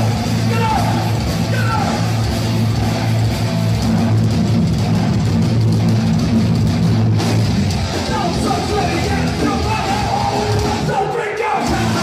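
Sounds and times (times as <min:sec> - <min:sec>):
heavy metal band playing: 0:00.0 - 0:12.0.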